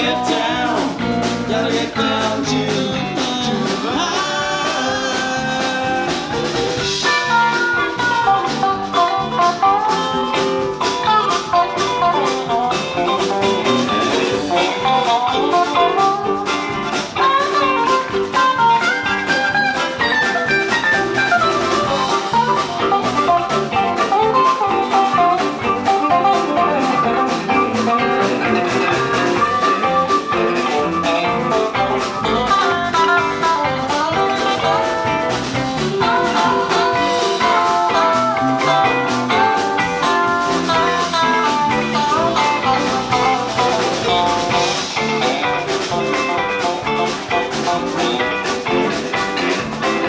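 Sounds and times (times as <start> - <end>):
bass guitar: 0.0 - 50.0
drum kit: 0.0 - 50.0
electric guitar: 0.0 - 50.0
harmonica melody: 3.4 - 50.0.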